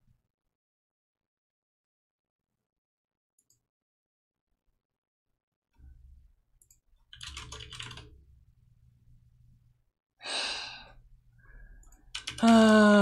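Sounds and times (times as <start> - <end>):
computer keyboard clicks: 6.6 - 8.1, 11.8 - 12.8
breathy exhale: 10.2 - 11.8
man sighing: 12.4 - 13.0.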